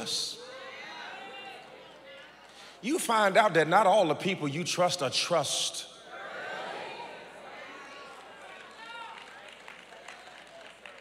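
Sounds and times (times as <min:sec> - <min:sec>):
faint voices of congregation: 0:00.0 - 0:11.0.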